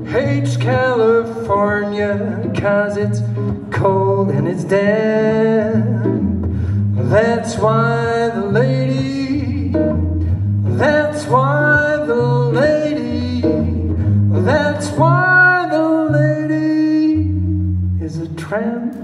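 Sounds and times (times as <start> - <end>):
acoustic guitar playing: 0.0 - 19.0
man singing: 0.0 - 19.0.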